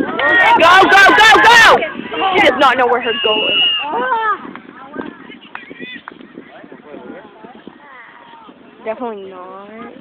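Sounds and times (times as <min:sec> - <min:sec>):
distant shouts and calls: 0:00.0 - 0:04.5.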